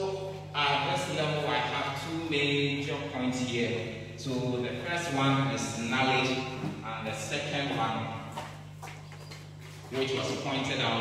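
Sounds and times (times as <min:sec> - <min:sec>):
man speaking: 0:00.0 - 0:08.4, 0:09.9 - 0:11.0
steady low hum: 0:00.0 - 0:11.0.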